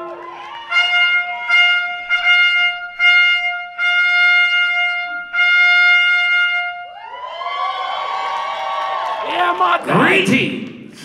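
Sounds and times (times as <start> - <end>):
trumpet holding a long note: 0.0 - 7.0.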